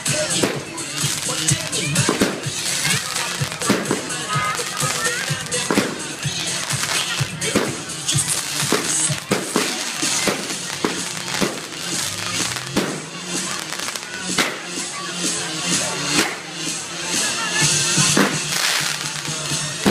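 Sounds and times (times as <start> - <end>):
crowd voices: 0.0 - 19.9
fireworks bangs and crackling: 0.0 - 19.9
music: 0.0 - 19.9.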